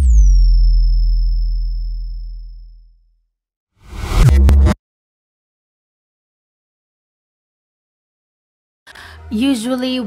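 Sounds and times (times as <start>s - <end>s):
deep bass boom: 0.0s - 3.0s, 3.9s - 4.8s.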